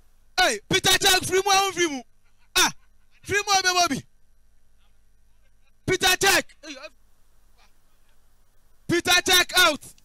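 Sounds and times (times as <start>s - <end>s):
low background noise: 0.0s - 10.0s
man shouting: 0.4s - 4.1s, 5.8s - 6.9s, 8.9s - 9.9s.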